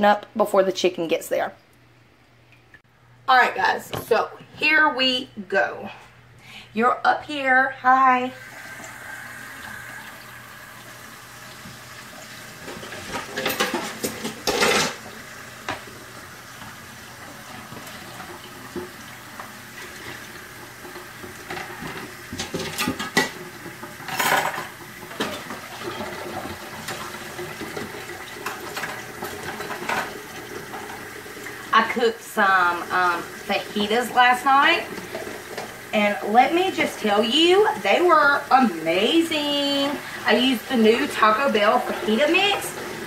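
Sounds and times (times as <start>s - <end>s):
tap running into a sink: 8.6s - 16.8s
cutlery and dishes clattering: 12.6s - 15.0s, 21.5s - 31.0s.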